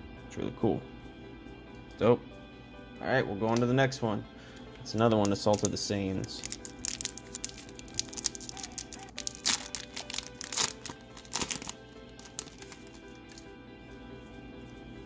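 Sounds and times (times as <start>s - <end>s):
background music: 0.0s - 15.0s
foil wrapper crinkling: 5.0s - 13.5s.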